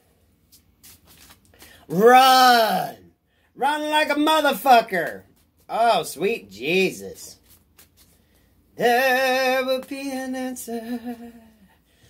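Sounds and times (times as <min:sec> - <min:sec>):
cards being shuffled: 0:00.4 - 0:01.9, 0:05.0 - 0:05.8, 0:07.3 - 0:08.5.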